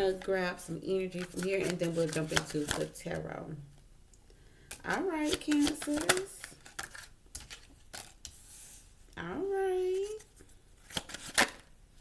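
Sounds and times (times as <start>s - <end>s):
cards snapping: 4.7s - 8.2s, 10.9s - 11.7s.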